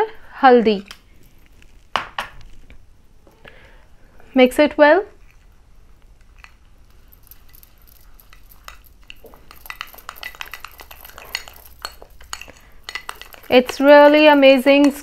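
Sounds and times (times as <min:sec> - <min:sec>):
spoon stirring paste in glass bowl: 0:05.2 - 0:15.0.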